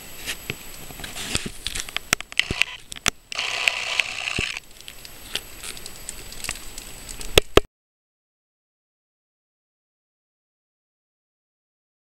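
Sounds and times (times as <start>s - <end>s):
rustling hiss: 0.0s - 7.6s
campfire crackling: 0.0s - 7.7s.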